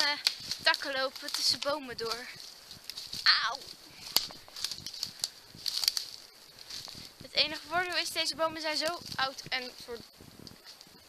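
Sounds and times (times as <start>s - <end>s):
twigs snapping underfoot: 0.0s - 9.7s
branches brushing past: 0.0s - 11.0s.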